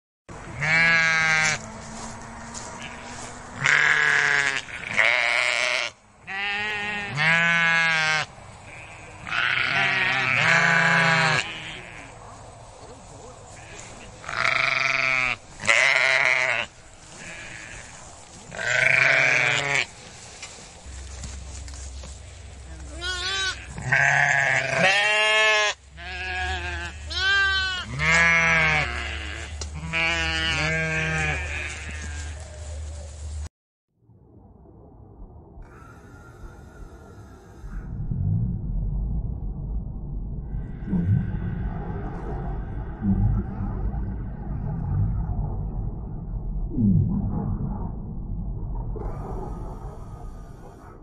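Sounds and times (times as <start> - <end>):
sheep bleating: 0.5 - 1.6, 2.7 - 12.1, 13.5 - 19.9, 22.9 - 32.4
steady low hum: 34.4 - 51.0.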